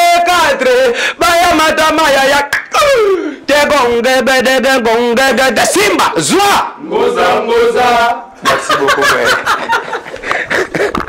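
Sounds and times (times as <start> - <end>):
man yelling into a microphone: 0.0 - 6.8.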